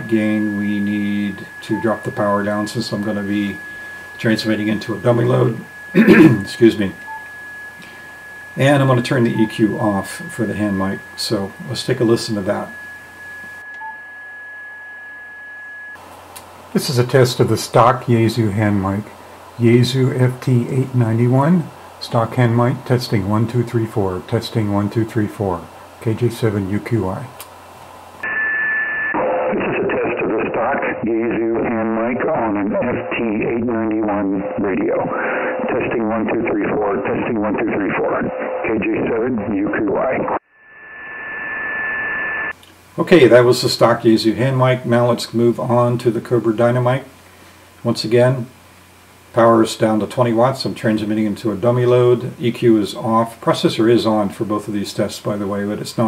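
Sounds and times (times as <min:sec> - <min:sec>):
radio band hiss: 0:00.0 - 0:14.5, 0:16.4 - 0:56.0
high-pitched electronic whine: 0:00.0 - 0:16.0, 0:28.2 - 0:44.9
short soft beep: 0:00.0 - 0:16.0
steady high whistle: 0:00.0 - 0:16.0, 0:28.2 - 0:29.5, 0:40.5 - 0:42.6
faint hiss: 0:42.5 - 0:56.0.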